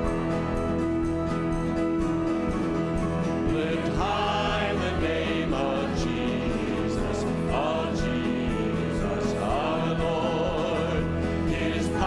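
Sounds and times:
worship band playing instrumental: 0.0 - 12.0.

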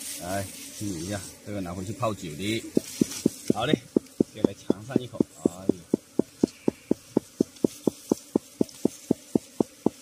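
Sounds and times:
insect pulsing: 1.7 - 10.0.

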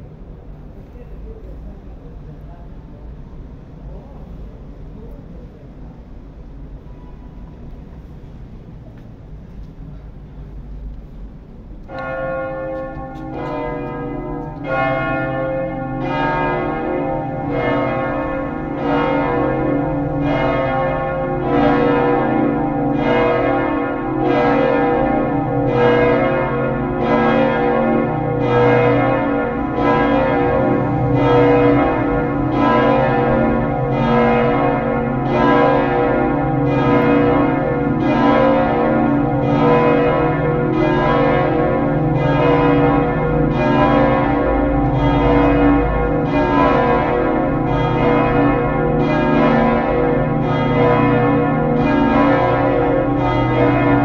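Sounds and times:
church bells pealing: 11.8 - 54.0.

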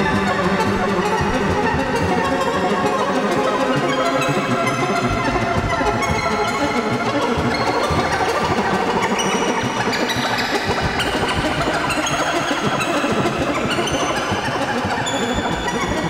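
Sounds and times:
synthesizer experimental tones: 3.4 - 9.4.

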